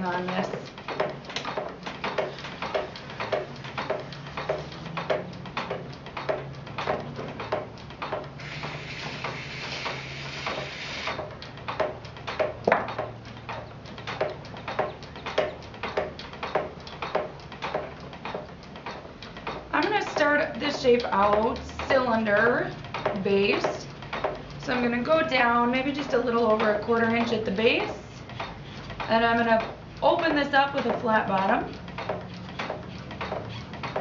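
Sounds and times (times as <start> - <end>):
treadle potter's wheel clacking: 0.0 - 34.0
hiss: 8.4 - 11.2.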